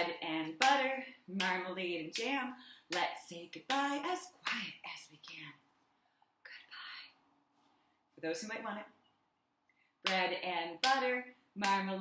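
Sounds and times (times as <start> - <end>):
woman whispering: 4.6 - 5.6, 6.4 - 7.2.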